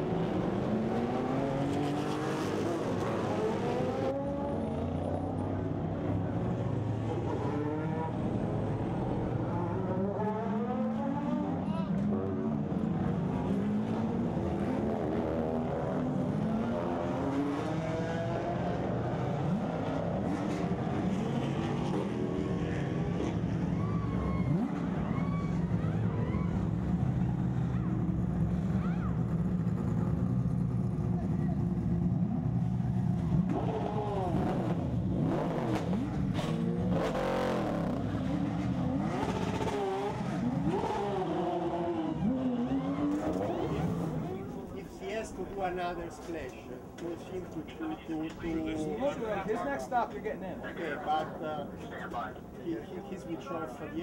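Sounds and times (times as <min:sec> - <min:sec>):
cars passing by: 0:00.0 - 0:54.0
race car engines droning: 0:00.0 - 0:54.0
people talking: 0:43.4 - 0:54.0.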